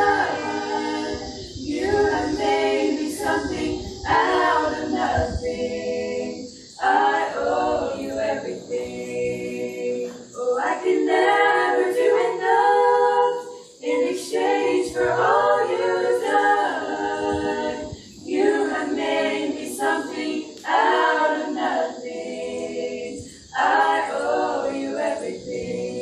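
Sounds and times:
women singing a hymn a cappella: 0.0 - 26.0
singers breathing: 17.9 - 18.3, 23.2 - 23.6.

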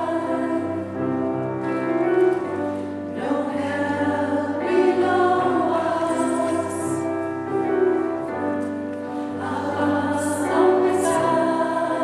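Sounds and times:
mixed choir singing: 0.0 - 1.0, 3.1 - 7.8, 9.1 - 12.0.

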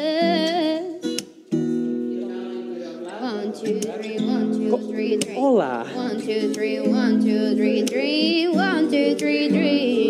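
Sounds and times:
acoustic guitar strumming: 0.0 - 10.0.

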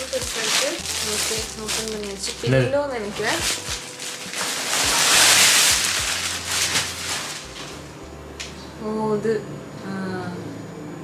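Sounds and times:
plastic bag rustling and crinkling: 0.0 - 2.4, 3.0 - 8.0.

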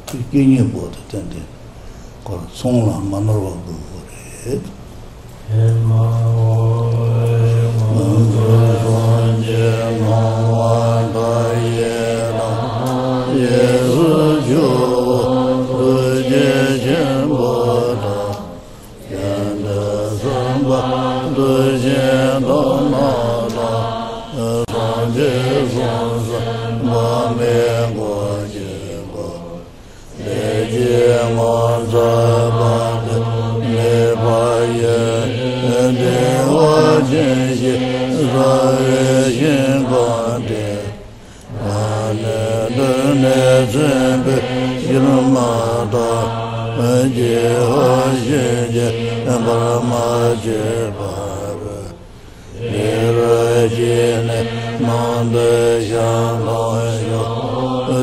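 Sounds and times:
person chanting in monotone: 2.2 - 4.8, 5.4 - 58.0.

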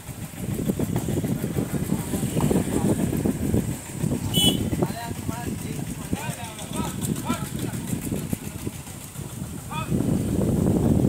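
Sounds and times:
steady low rumble: 0.0 - 11.0
people talking and calling: 0.2 - 10.1.

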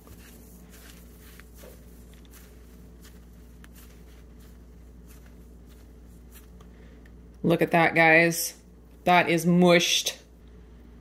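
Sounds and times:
bread crushed in hands: 0.0 - 7.2.

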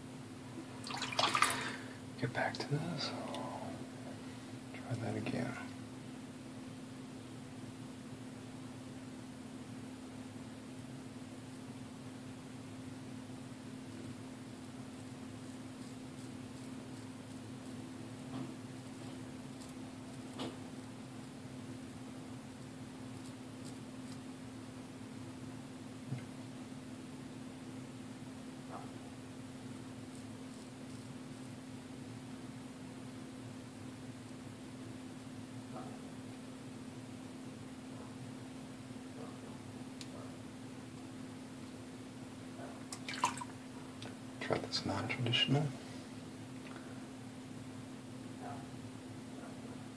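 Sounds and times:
low room hum: 0.0 - 49.9.

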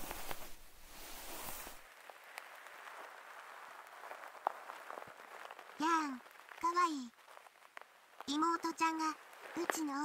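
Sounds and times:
cloth rustling: 0.0 - 1.9
faint hiss: 0.0 - 10.0
small crackles: 0.0 - 10.0.

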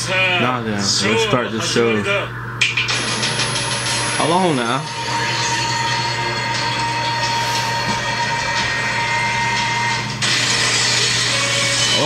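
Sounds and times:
high whine: 0.0 - 12.0
noisy rumble: 0.9 - 11.8.

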